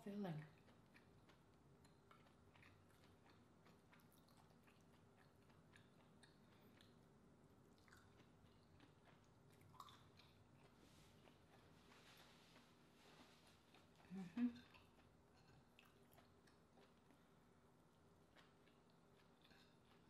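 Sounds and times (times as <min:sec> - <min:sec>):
biting and chewing: 0:00.4 - 0:07.1, 0:07.7 - 0:17.3, 0:18.2 - 0:20.0.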